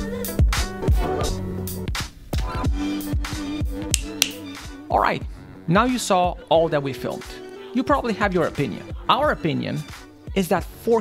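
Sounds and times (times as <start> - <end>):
background music with low beat: 0.3 - 5.0
sharp clicks: 3.9 - 4.4.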